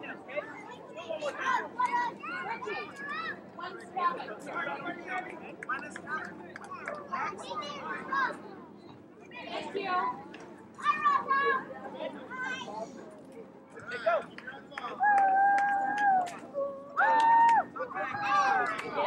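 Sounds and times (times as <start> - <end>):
indistinct background chatter: 0.0 - 19.0.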